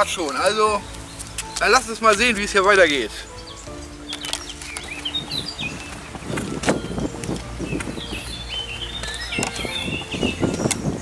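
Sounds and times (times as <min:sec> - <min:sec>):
small songbird chirping: 0:00.0 - 0:11.0.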